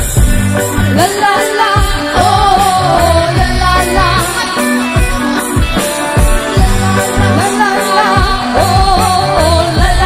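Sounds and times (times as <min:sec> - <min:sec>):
live pop band: 0:00.0 - 0:10.0
person singing: 0:01.0 - 0:10.0.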